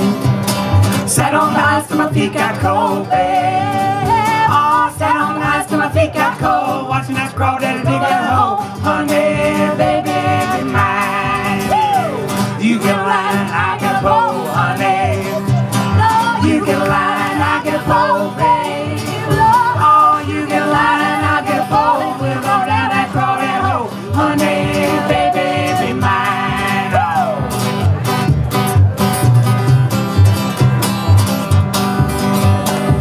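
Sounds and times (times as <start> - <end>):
acoustic guitar: 0.0 - 33.0
plucked upright bass: 0.0 - 33.0
person singing: 1.1 - 27.5.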